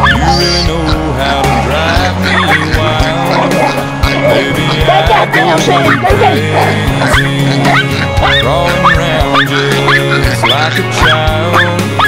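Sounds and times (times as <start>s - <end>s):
small dog yapping: 0.0s - 0.7s
pop song with singing: 0.0s - 12.0s.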